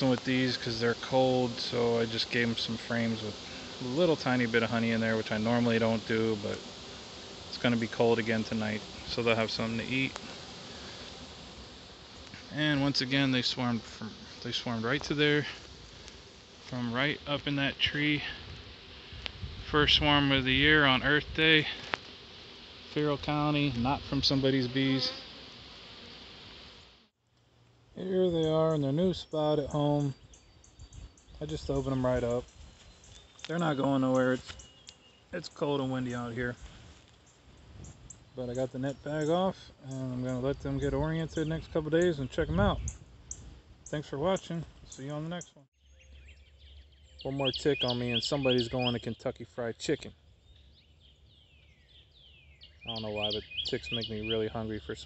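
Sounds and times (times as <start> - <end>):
honeybees buzzing: 0.0 - 45.5, 46.4 - 49.4, 50.0 - 55.0
bird whistling: 45.8 - 49.1, 50.7 - 54.4.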